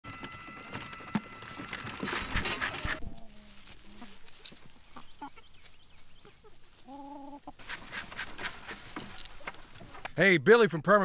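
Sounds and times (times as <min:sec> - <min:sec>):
drawn-out hen call: 0:00.1 - 0:09.8
chickens clucking: 0:00.1 - 0:10.2.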